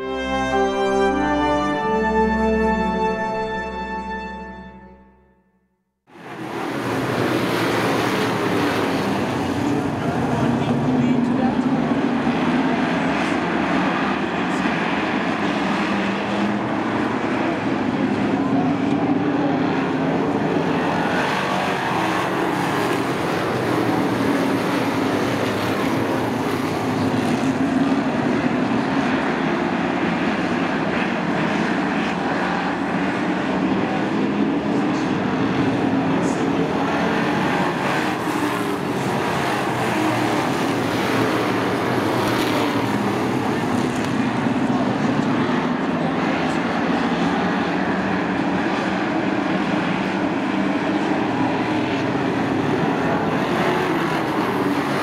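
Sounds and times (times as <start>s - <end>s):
stock car engines racing: 6.1s - 55.0s.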